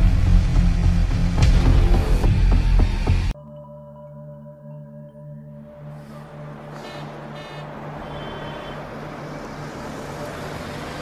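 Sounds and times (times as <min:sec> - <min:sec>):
road traffic noise: 0:05.7 - 0:11.0.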